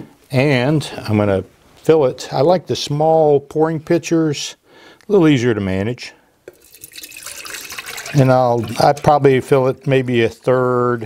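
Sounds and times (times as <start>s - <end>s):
liquid wax pouring into metal pitcher: 6.5s - 10.9s.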